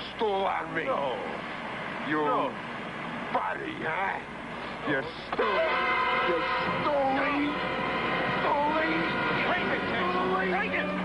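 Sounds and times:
steady background tone: 0:00.0 - 0:11.0.

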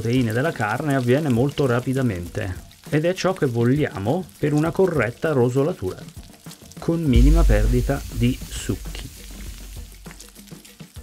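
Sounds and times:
background music: 0:00.0 - 0:11.0
meat sizzling in a pan: 0:00.0 - 0:11.0.

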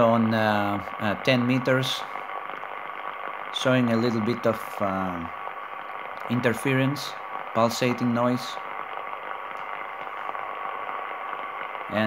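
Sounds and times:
pulsating radio interference noise: 0:00.0 - 0:12.0.

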